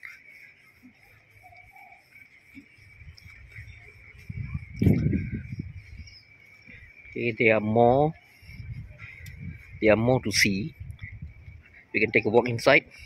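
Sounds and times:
high-pitched insect chirring: 0.0 - 13.0.

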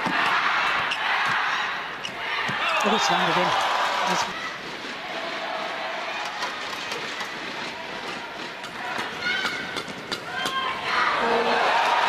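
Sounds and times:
crowd hum: 0.0 - 12.0.

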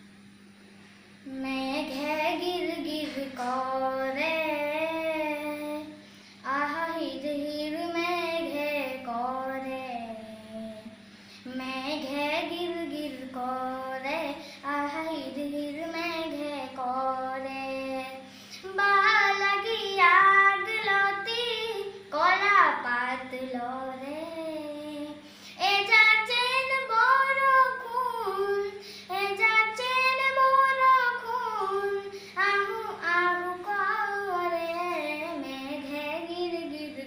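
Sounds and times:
boy singing unaccompanied: 1.2 - 37.0.

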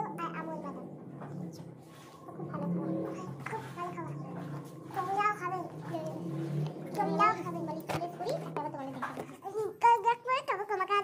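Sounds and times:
child making wordless vocal sounds: 0.0 - 1.7, 2.3 - 11.0
low steady hum: 0.0 - 11.0.

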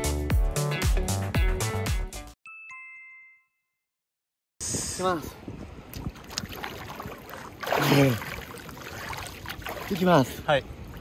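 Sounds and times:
river water sloshing and splashing: 5.8 - 11.0.

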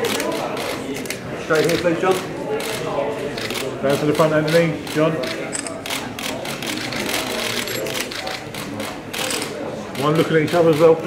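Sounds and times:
murmur of voices: 0.0 - 11.0
camera shutters clicking: 4.4 - 9.5.

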